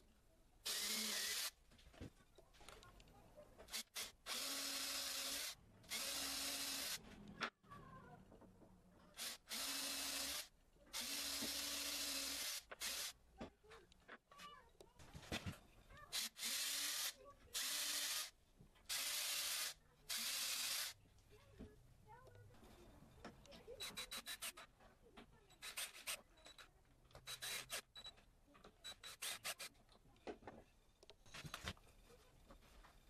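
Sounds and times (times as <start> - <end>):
drill driving screws into plywood: 0.6 - 1.6, 3.7 - 7.0, 9.2 - 13.2, 16.1 - 18.3, 18.9 - 21.0, 23.8 - 24.7, 25.6 - 26.2, 27.2 - 27.9, 29.0 - 29.7.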